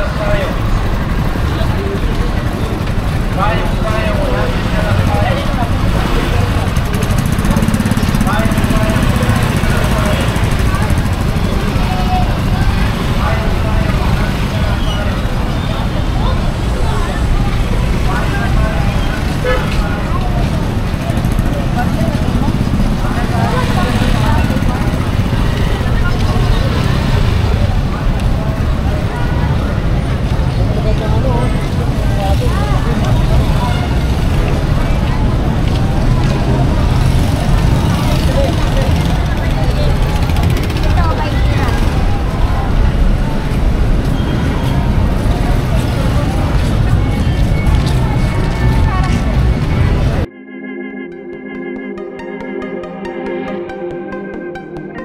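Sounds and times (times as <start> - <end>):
motorcycle engines rumbling: 0.0 - 50.3
people talking: 0.0 - 50.3.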